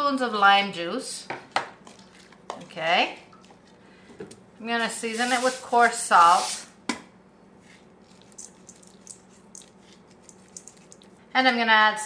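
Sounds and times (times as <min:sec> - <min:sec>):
faint steady hum: 0:00.0 - 0:12.0
salt sprinkling rustles: 0:04.8 - 0:06.7, 0:07.6 - 0:11.2.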